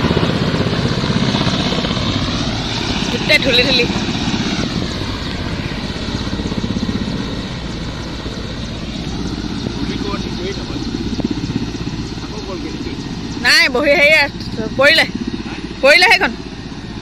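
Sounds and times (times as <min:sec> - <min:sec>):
helicopter engine whine: 0:00.0 - 0:17.0
helicopter rotor beating: 0:00.0 - 0:17.0.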